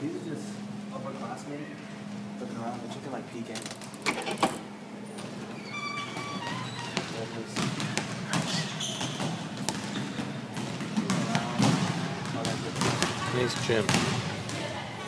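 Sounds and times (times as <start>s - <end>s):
basketballs bouncing on wooden floor: 5.1s - 14.8s.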